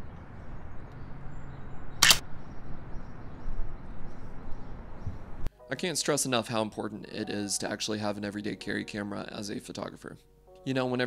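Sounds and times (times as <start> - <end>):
outdoor background noise: 0.0 - 5.5
camera shutter click: 2.0 - 2.2.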